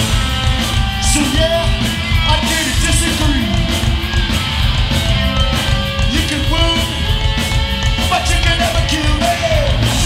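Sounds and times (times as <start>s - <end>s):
punk band playing: 0.0s - 10.0s.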